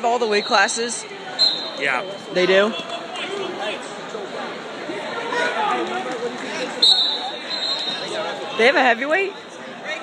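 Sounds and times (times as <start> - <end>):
chatter of many people: 0.0 - 10.0.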